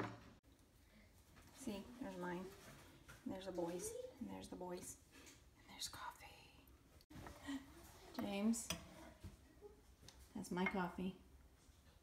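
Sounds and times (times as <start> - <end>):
faint whispered voice: 5.6 - 6.7.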